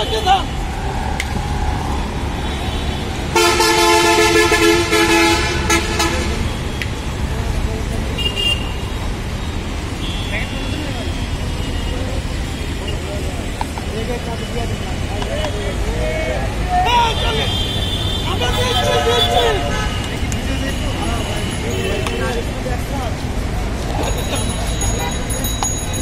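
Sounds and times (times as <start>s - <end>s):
road traffic rumble: 0.0s - 26.0s
high-pitched horn toots: 2.4s - 6.5s
vehicle horn sounding: 2.4s - 6.7s, 8.2s - 9.0s, 10.0s - 10.9s, 17.1s - 22.3s.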